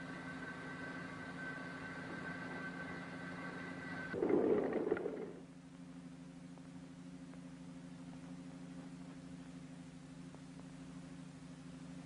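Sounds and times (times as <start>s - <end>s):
faint high whine: 0.0s - 12.0s
mechanical hum: 0.0s - 12.0s
rough noise burst: 4.2s - 5.5s.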